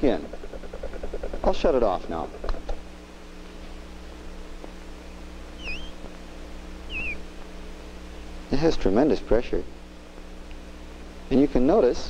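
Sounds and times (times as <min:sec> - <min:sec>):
steady low hum: 0:00.0 - 0:12.0
glass cup squeaking on skin: 0:05.6 - 0:06.0, 0:06.9 - 0:07.2.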